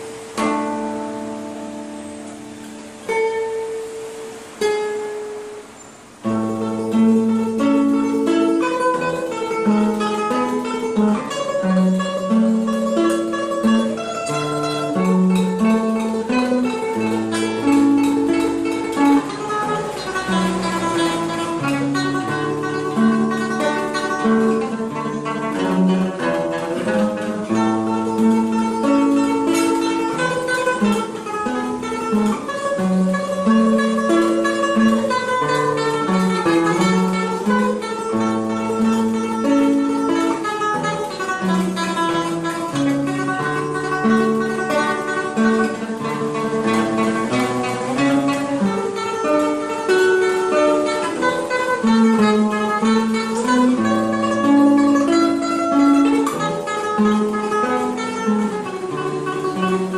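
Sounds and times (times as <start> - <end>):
fingerstyle classical guitar: 0.0 - 59.9.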